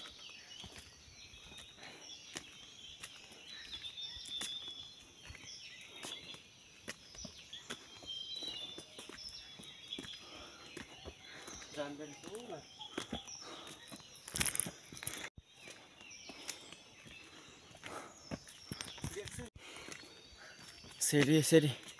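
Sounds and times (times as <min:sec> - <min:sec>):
faint bird chirps: 0:00.0 - 0:21.9
footsteps on stone stairs: 0:00.0 - 0:21.9.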